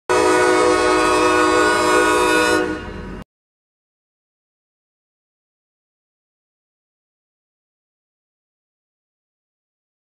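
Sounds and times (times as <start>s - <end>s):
locomotive air horn blast: 0.1s - 3.2s.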